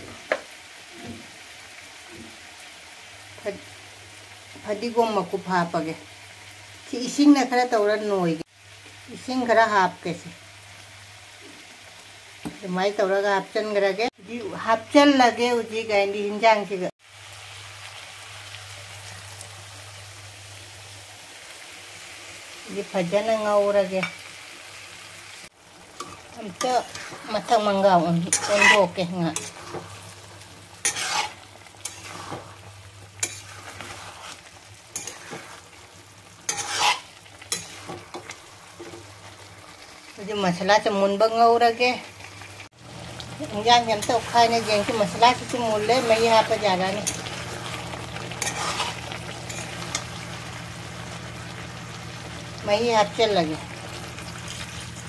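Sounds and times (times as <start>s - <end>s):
food sizzling in a frying pan: 0.0s - 55.0s
utensil scraping pan: 26.0s - 30.1s, 30.8s - 35.8s, 36.5s - 39.0s, 44.0s - 50.1s
person speaking: 43.4s - 47.1s.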